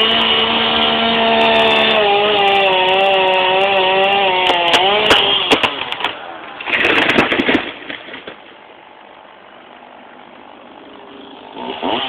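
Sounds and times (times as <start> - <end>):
chainsaw engine revving and idling: 0.0 - 6.1, 10.6 - 12.0.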